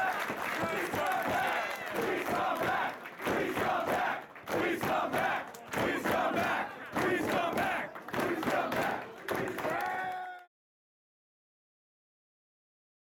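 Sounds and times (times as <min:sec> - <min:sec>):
crowd chanting in unison: 0:00.0 - 0:10.4.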